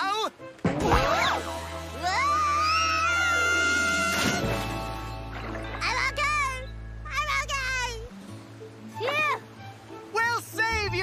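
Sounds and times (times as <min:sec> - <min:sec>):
background music: 0:00.0 - 0:11.0
splash into water: 0:04.0 - 0:06.0.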